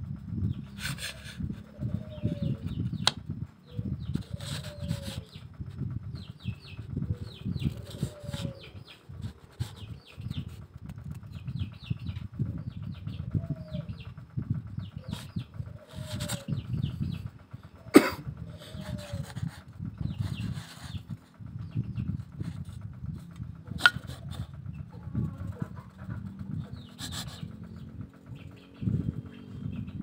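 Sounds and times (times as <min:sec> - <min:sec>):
birds calling and chirping: 0:00.0 - 0:30.0
wooden rods rubbing and knocking: 0:00.6 - 0:03.2, 0:04.0 - 0:05.8, 0:07.2 - 0:11.3, 0:15.0 - 0:16.7, 0:17.9 - 0:28.2.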